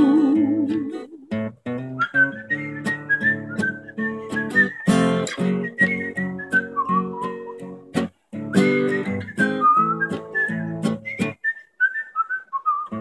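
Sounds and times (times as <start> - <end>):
strummed acoustic guitar: 0.0 - 11.4
man whistling a melody: 1.8 - 13.0.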